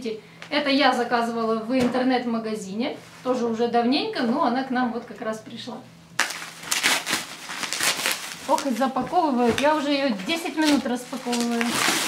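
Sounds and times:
bubble wrap crinkling and crackling: 0:06.2 - 0:12.0.

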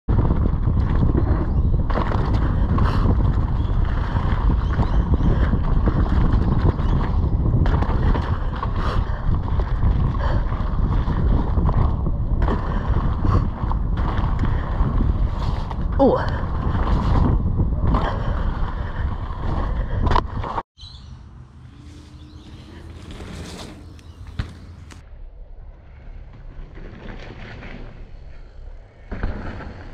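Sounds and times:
bike rattles and knocks: 0:00.1 - 0:20.6, 0:22.4 - 0:25.0, 0:26.2 - 0:29.9
wind buffeting microphone: 0:00.1 - 0:20.6
bike tyres rolling on rocky dirt: 0:00.1 - 0:20.7, 0:21.7 - 0:25.0, 0:25.7 - 0:29.9.

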